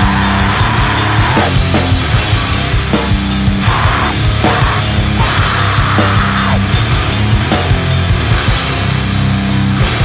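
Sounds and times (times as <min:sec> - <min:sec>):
distorted guitar and bass: 0:00.0 - 0:10.0
pounding drums: 0:00.0 - 0:10.0.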